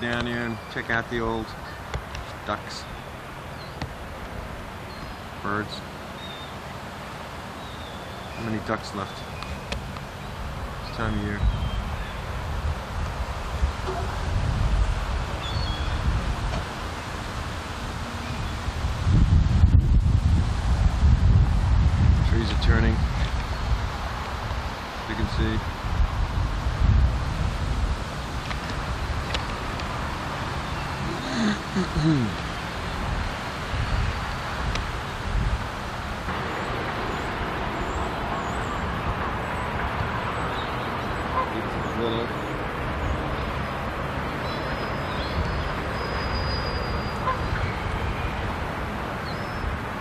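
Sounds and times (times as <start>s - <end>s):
wind buffeting microphone: 9.3s - 50.0s.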